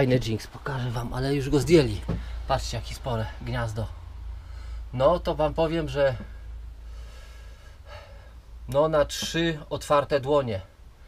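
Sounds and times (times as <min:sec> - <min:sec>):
man talking: 0:00.0 - 0:04.0, 0:04.9 - 0:06.4, 0:08.6 - 0:10.7
low steady rumble: 0:00.0 - 0:11.0.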